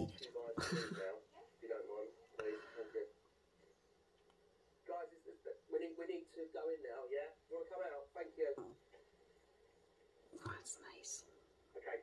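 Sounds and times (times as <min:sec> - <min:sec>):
person whispering: 0:10.4 - 0:11.3.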